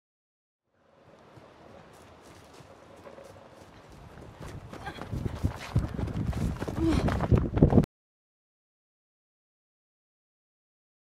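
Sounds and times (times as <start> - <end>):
running footsteps in undergrowth: 0.9 - 7.8.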